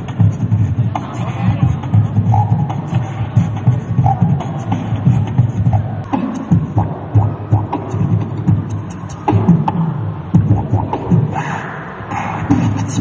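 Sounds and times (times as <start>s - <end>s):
beatboxing into microphone: 0.0s - 13.0s.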